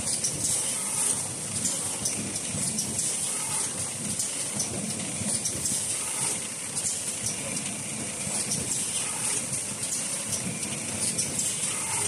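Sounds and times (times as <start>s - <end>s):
machine running with steady hiss: 0.0s - 12.0s.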